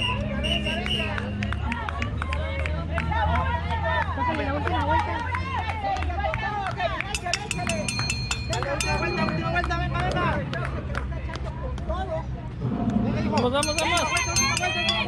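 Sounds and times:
spectators talking and calling out: 0.0 - 15.0
metallic ringing strikes: 7.2 - 9.9, 13.4 - 15.0.

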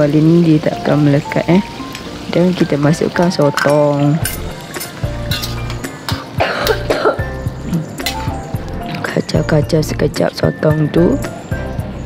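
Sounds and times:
background music: 0.0 - 12.0
food frying in a wok: 0.0 - 12.0
metal spatula clinking on pan: 3.5 - 6.8, 8.0 - 8.4.

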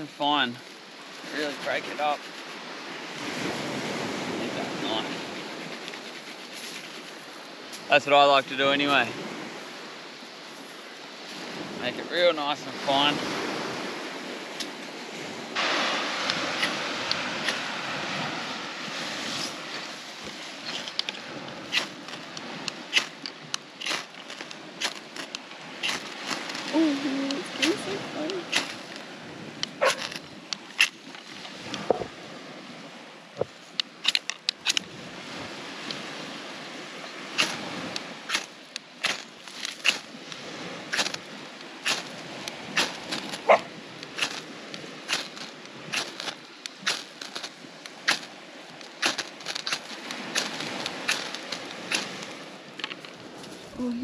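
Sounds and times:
knife rasping on fire-starter rod: 5.2 - 7.1, 16.6 - 16.8, 17.4 - 17.7, 20.3 - 26.8, 27.5 - 29.0, 29.6 - 31.2, 38.3 - 40.2, 40.9 - 41.2, 41.8 - 42.2, 42.8 - 44.5, 45.1 - 47.5, 48.1 - 52.3.

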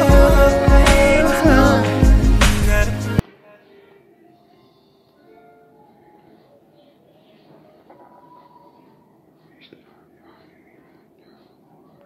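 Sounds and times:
faint whispering voice: 5.8 - 12.0.

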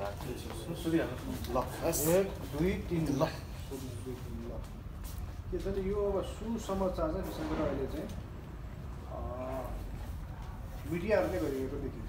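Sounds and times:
man speaking: 0.0 - 4.8, 5.5 - 8.2, 9.0 - 10.1, 10.8 - 12.0.

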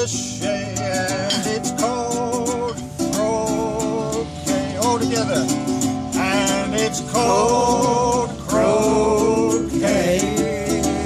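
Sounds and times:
man singing: 0.0 - 11.0
ukulele strumming: 0.0 - 11.0
another voice singing along: 6.2 - 11.0.

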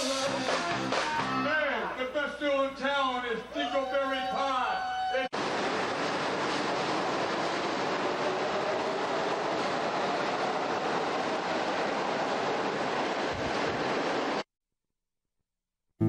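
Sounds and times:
subway train rumbling on rails: 5.0 - 14.4.

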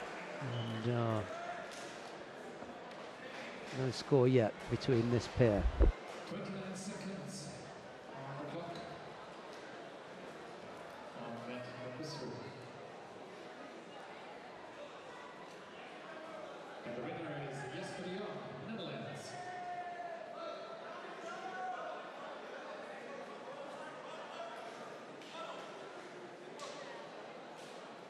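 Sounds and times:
steady hall noise: 0.0 - 28.0
voices echoing in a hall: 0.0 - 28.0.

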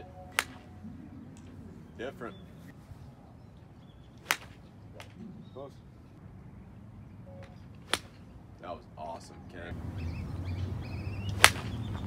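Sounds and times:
golf club striking ball: 0.3 - 1.5, 4.2 - 5.2, 7.8 - 8.3.

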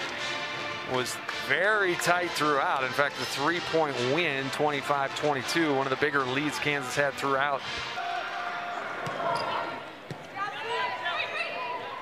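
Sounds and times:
people shouting: 7.9 - 9.8.

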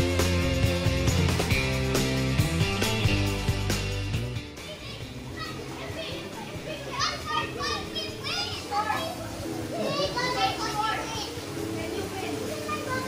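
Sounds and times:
children shouting in pool: 4.6 - 13.0.

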